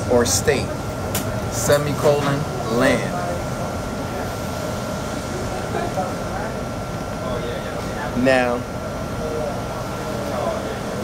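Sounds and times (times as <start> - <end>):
air-handling and refrigeration hum: 0.0 - 11.0
faint voices: 0.0 - 11.0
thin constant whine: 0.0 - 11.0.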